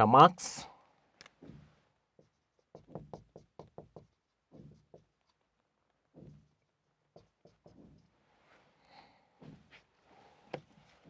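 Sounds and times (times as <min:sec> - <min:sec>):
marker pen writing on whiteboard: 0:01.3 - 0:08.5.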